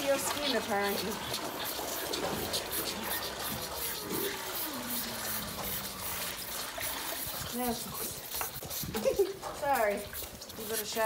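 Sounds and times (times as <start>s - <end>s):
calf bawling: 0.0s - 7.9s
milk pouring and splashing: 0.0s - 11.0s.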